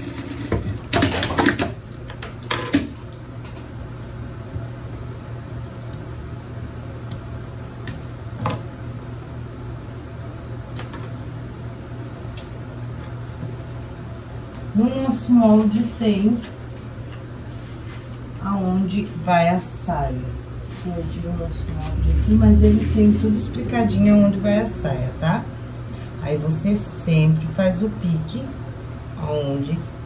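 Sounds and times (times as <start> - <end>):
sewing machine motor humming: 0.0 - 1.3
sewing machine stitching: 0.0 - 1.7.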